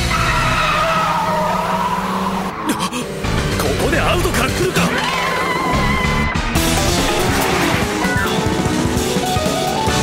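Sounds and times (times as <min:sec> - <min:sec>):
car tyres squealing: 0:00.0 - 0:03.3, 0:04.2 - 0:08.4
race car engine: 0:00.0 - 0:09.8.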